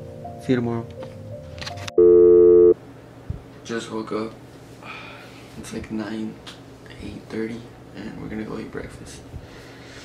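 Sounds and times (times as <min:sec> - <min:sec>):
electronic buzzer tone: 0:02.0 - 0:02.8.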